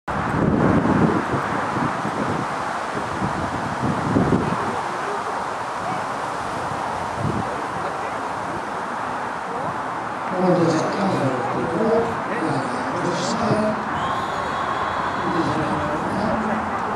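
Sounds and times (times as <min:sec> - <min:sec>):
wind noise on microphone: 0:00.1 - 0:16.9
indistinct background voices: 0:04.2 - 0:16.9.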